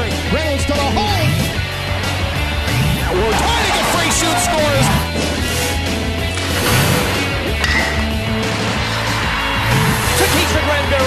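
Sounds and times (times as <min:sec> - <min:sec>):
sports show theme music: 0:00.0 - 0:11.0.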